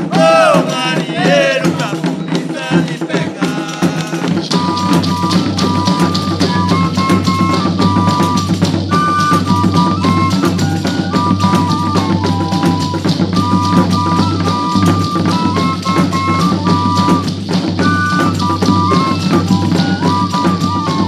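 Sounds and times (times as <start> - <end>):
voices singing: 0.0 - 17.2
steady drum beat: 0.0 - 21.0.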